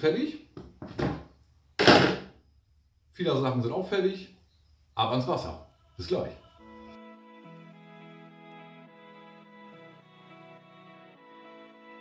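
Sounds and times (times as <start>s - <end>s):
plastic bucket set down scrape: 0.8s - 2.3s.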